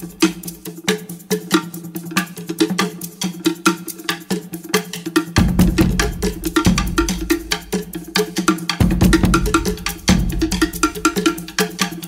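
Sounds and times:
wooden percussion strikes: 0.0 - 12.0.

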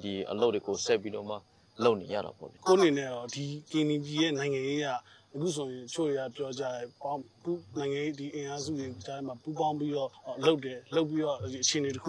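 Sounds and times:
insects chirring: 0.0 - 12.0
man speaking: 0.0 - 12.0.

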